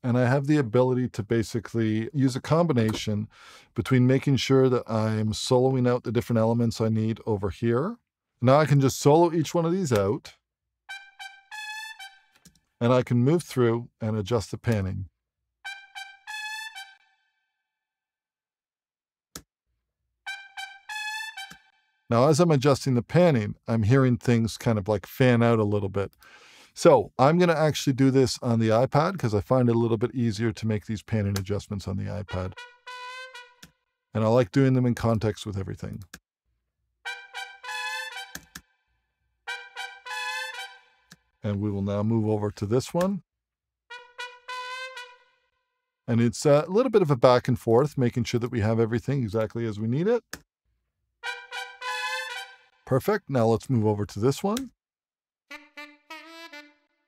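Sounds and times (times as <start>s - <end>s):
trumpet playing high phrase: 10.9s - 12.2s, 15.7s - 17.0s, 20.3s - 21.6s, 32.1s - 33.6s, 37.1s - 38.4s, 39.5s - 41.0s, 43.9s - 45.4s, 51.2s - 53.0s, 55.5s - 57.0s.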